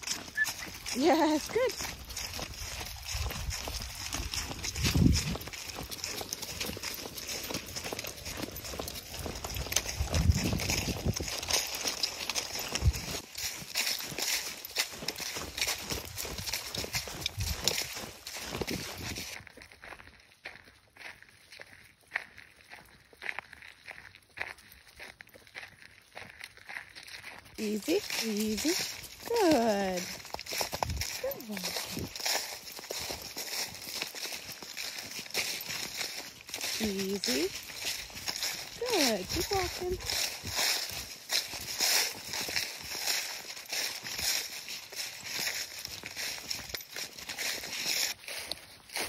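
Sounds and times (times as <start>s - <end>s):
footsteps crunching dry leaves: 0.0s - 49.0s.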